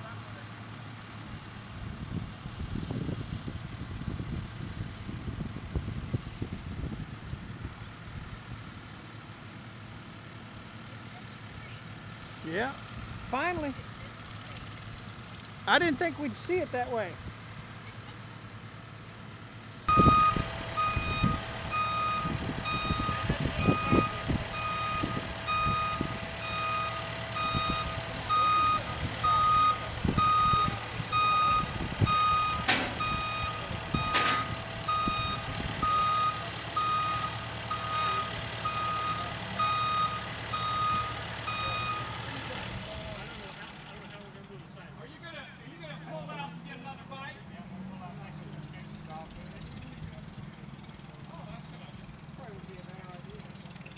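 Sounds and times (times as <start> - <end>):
diesel engine running: 0.0 - 53.9
reverse alarm beeping: 19.9 - 42.2.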